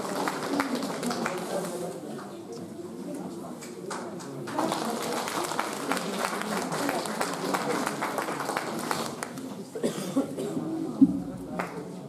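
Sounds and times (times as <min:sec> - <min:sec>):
audience applauding: 0:00.0 - 0:01.7, 0:04.4 - 0:09.5
murmuring voices: 0:00.0 - 0:12.0.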